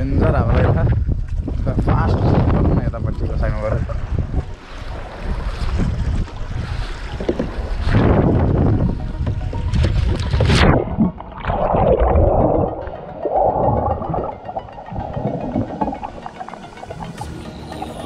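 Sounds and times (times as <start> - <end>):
wind buffeting microphone: 0.0 - 17.2
water splashing: 3.1 - 18.0
muffled underwater gurgling: 5.7 - 18.0.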